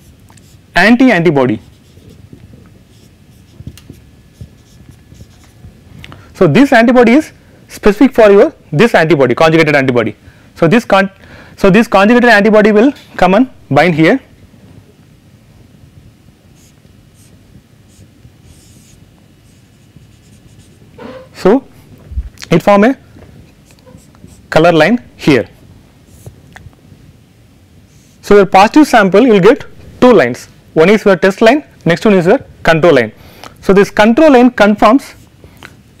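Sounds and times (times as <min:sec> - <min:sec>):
marker scratching on whiteboard: 0:00.0 - 0:00.6, 0:01.6 - 0:02.2, 0:02.9 - 0:05.7, 0:16.6 - 0:21.3, 0:23.7 - 0:24.5, 0:27.9 - 0:28.2.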